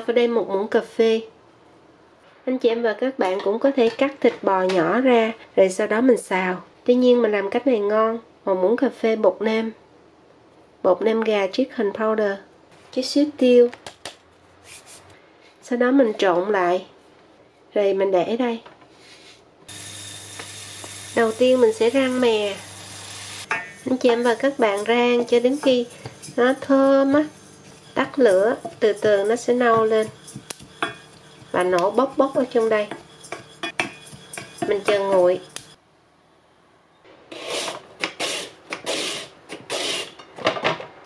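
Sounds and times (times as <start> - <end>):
carrot scraping on mandoline slicer: 23.5 - 35.8, 37.3 - 40.2.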